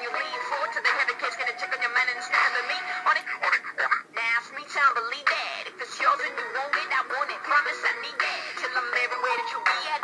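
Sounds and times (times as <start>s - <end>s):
rap song from small speaker: 0.0s - 10.0s.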